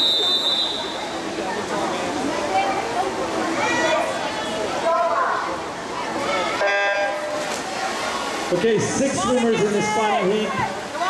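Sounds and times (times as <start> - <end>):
voices of people: 0.0 - 11.0.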